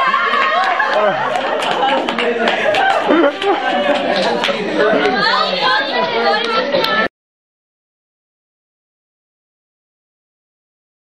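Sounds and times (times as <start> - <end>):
people chattering: 0.0 - 7.1.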